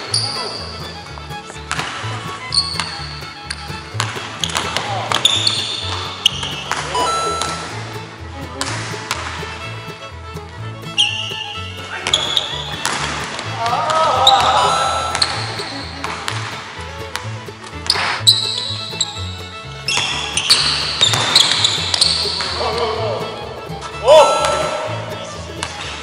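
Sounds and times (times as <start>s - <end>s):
music with steady beat: 0.8s - 11.9s, 12.7s - 26.0s
short high-pitched tones: 6.9s - 8.0s, 14.6s - 15.7s, 24.1s - 25.2s.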